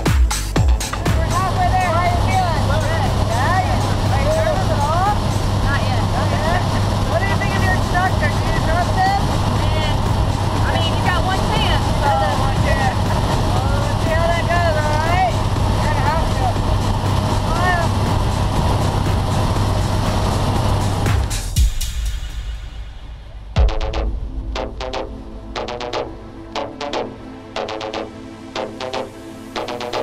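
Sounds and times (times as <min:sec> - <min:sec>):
plane engine and propeller drone: 0:00.7 - 0:30.0
people talking loudly: 0:10.6 - 0:16.6.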